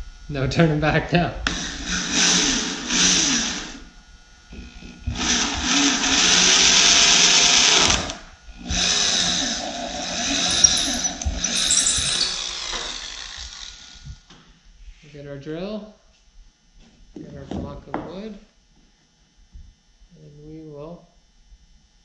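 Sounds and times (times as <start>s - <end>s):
electric drill boring: 5.2s - 8.2s.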